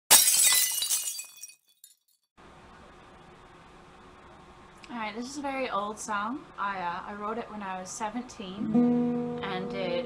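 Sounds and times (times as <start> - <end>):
glass shattering: 0.1 - 2.2.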